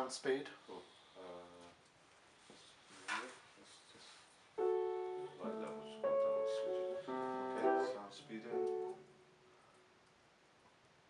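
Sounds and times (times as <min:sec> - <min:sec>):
piano chords: 0:04.6 - 0:09.4.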